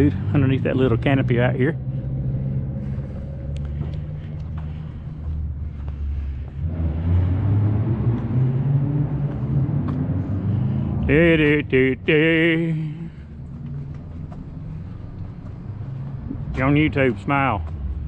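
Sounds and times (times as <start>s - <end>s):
vehicle engine rumbling: 0.0s - 18.0s.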